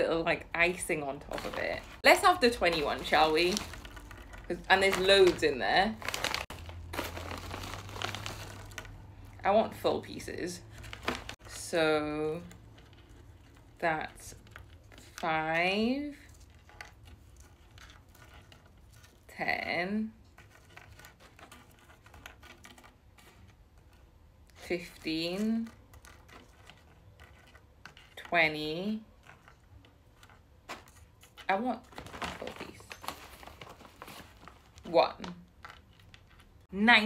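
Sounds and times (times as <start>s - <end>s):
plastic bag crinkling: 0.6s - 11.5s, 24.8s - 28.3s, 28.9s - 36.7s.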